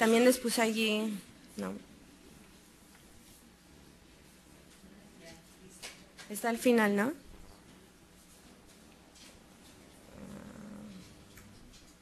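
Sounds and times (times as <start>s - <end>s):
person humming low: 10.1s - 11.5s.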